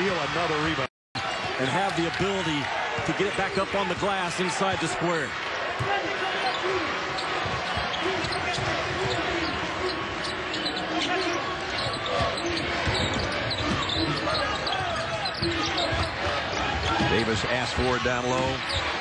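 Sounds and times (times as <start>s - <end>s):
arena crowd noise: 0.0s - 19.0s.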